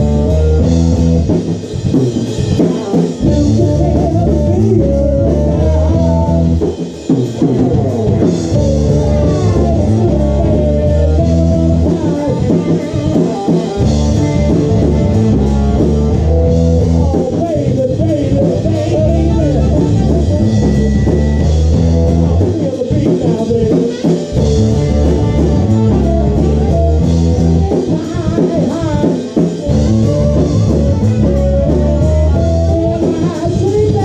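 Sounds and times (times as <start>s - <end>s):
blues band playing: 0.0s - 34.0s
saxophone: 2.6s - 6.7s, 7.4s - 17.6s, 18.6s - 34.0s.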